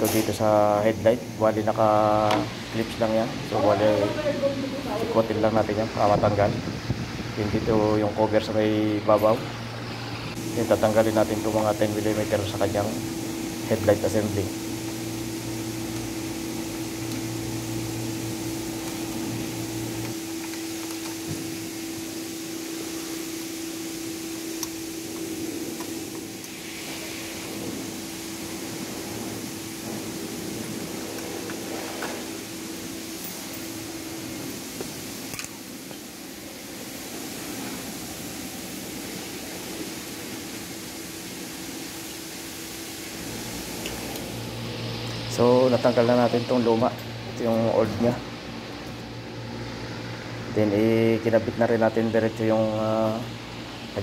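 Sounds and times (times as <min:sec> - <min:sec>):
lower hum: 0:00.0 - 0:54.0
steady mechanical hum: 0:00.0 - 0:54.0.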